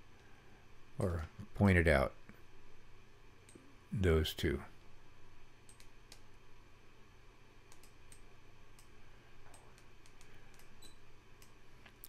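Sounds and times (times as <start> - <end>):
computer mouse clicks: 5.7 - 6.3, 7.7 - 8.9, 9.5 - 11.6.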